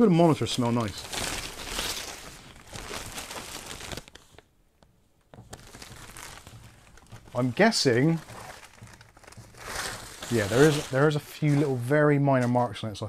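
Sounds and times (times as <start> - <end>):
plastic bag crinkling: 0.0 - 4.5, 5.2 - 12.0.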